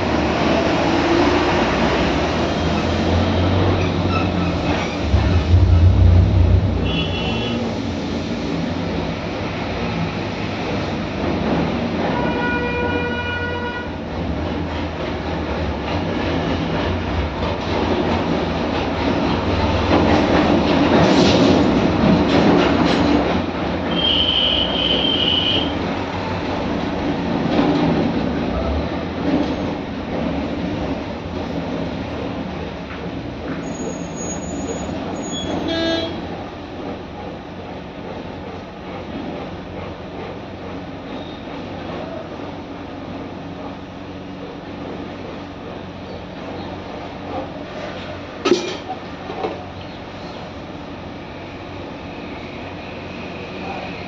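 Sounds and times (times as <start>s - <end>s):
passing vehicles rumble: 0.0s - 11.8s
car horn: 6.8s - 7.7s, 12.2s - 13.9s, 23.9s - 25.7s, 35.7s - 36.2s.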